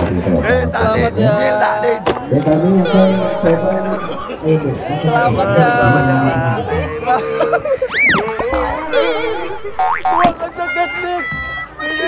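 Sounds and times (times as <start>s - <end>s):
warbling tone: 2.8s - 4.4s, 8.0s - 10.4s
music: 2.9s - 4.3s, 8.7s - 9.8s
cartoon whistle glide: 7.9s - 10.3s.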